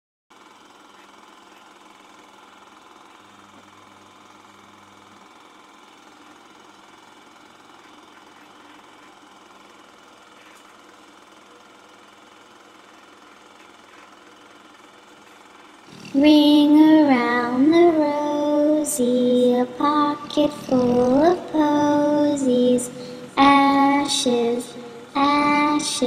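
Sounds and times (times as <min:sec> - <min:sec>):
film projector whirring: 0:00.3 - 0:26.0.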